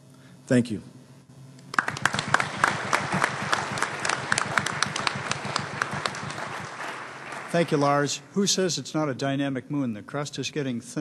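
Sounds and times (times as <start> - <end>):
audience applauding: 1.7 - 8.3.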